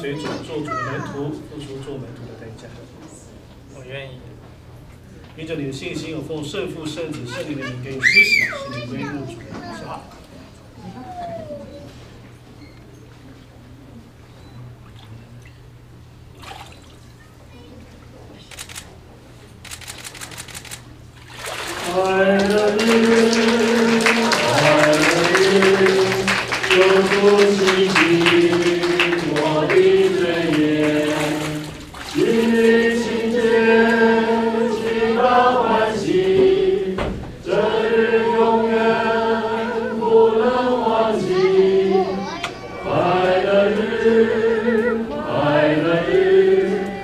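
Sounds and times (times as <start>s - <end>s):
camera shutters clicking: 18.5s - 18.9s, 19.6s - 20.9s
choir singing long notes: 21.8s - 47.0s.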